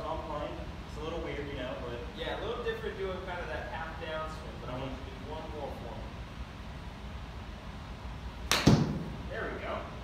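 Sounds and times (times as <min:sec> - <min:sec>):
golf club striking ball: 0:08.5 - 0:09.1.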